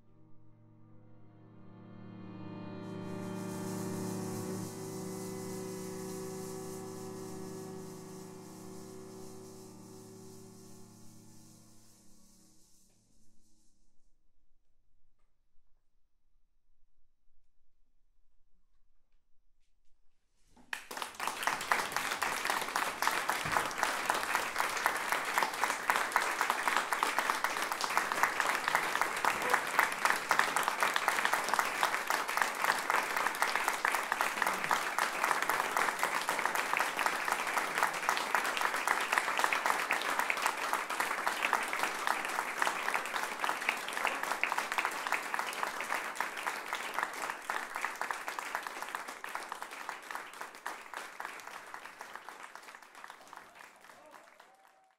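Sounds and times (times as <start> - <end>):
audience applauding: 20.7 - 54.9.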